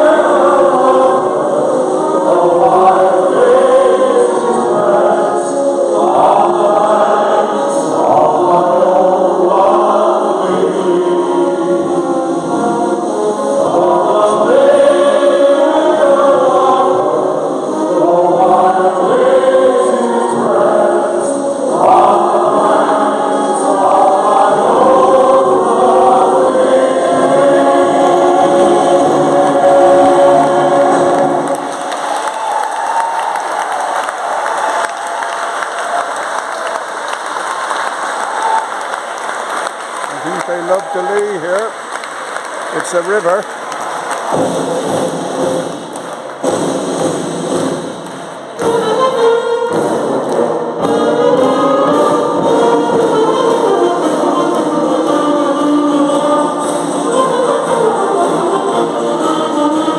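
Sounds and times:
singers singing into microphones: 0:00.0 - 0:59.9
audience applause: 0:28.0 - 0:48.6.

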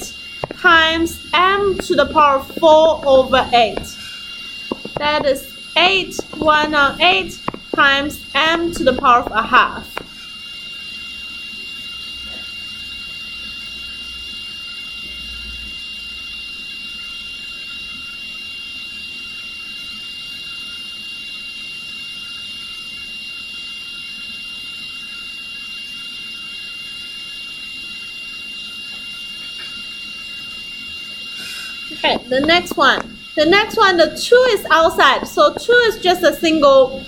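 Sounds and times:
high-pitched whine: 0:00.0 - 0:37.0.

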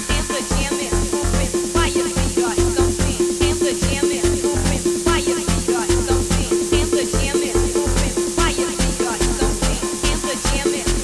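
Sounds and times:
repeating synth note: 0:00.0 - 0:11.0
rising synth stabs: 0:00.0 - 0:11.0
kick drum: 0:08.0 - 0:11.0.

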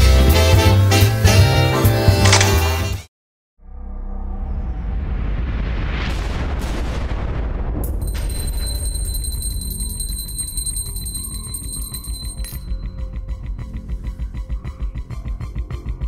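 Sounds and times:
sudden boom hit: 0:03.7 - 0:08.2.

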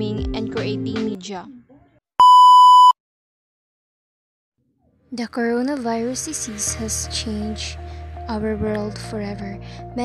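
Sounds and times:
high-pitched test-tone beep: 0:02.2 - 0:03.0.

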